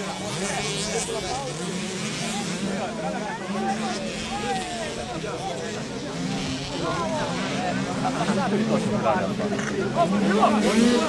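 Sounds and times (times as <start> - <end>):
distant motorcycles revving high: 0.0 - 11.0.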